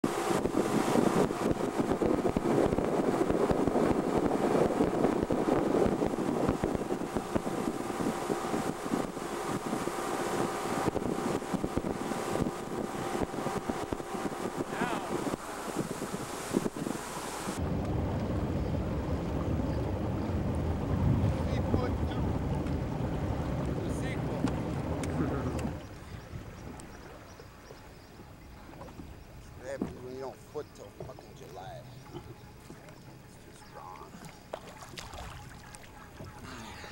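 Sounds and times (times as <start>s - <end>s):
boat motor running: 0.0s - 36.9s
wind buffeting microphone: 0.0s - 36.9s
water and spray hissing: 14.0s - 17.6s.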